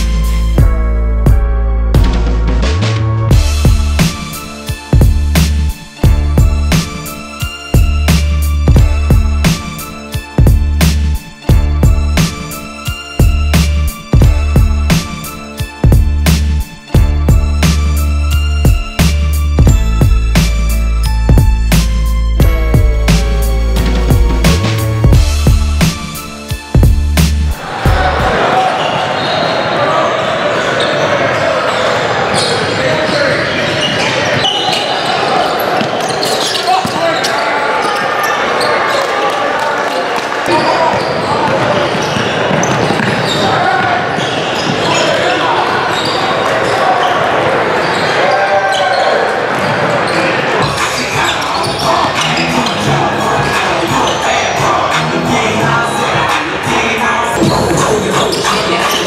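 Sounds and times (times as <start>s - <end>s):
indistinct shouting and chatter: 27.5s - 59.0s.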